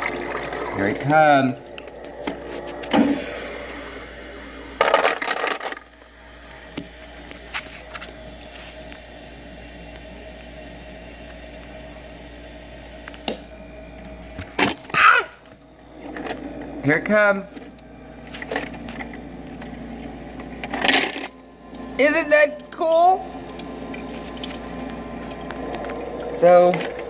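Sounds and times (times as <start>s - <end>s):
ice maker motor hum: 0.0s - 27.0s.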